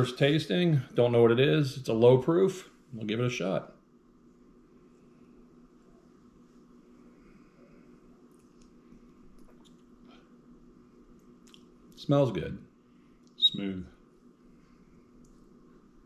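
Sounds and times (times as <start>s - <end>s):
mouth clicks and lip smacks: 8.3s - 10.0s, 11.1s - 12.0s.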